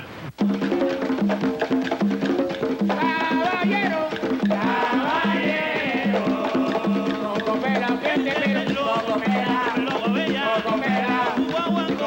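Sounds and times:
conga drums playing: 0.3s - 12.0s
person singing: 2.9s - 12.0s.

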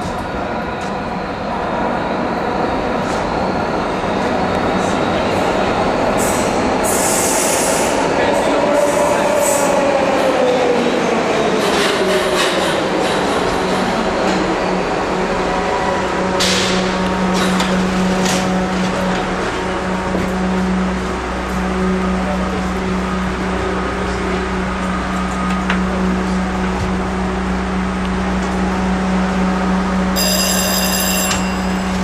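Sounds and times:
subway train arriving: 0.0s - 32.0s.

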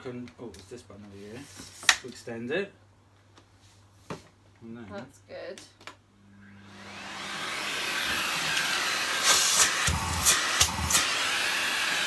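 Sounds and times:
vacuum cleaner running: 6.4s - 12.0s.

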